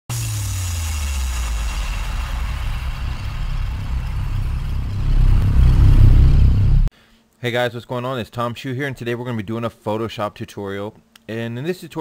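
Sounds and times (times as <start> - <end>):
high hiss: 0.1 - 6.9
deep rumble: 1.1 - 6.9.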